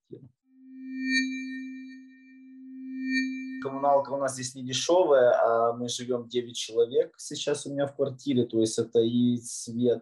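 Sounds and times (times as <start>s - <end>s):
soft bell-like ring: 0.9s - 4.6s.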